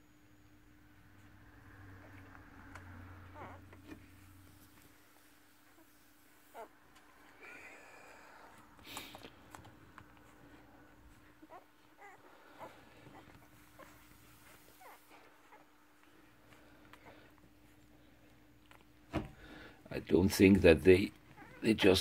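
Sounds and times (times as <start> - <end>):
puppies squeaking and whimpering: 3.1 - 4.5, 5.6 - 7.4, 10.2 - 17.9, 21.1 - 22.0.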